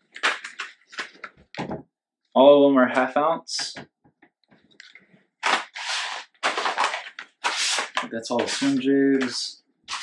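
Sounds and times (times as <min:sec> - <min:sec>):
plastic packs clacking: 0:00.1 - 0:01.4, 0:05.4 - 0:10.0.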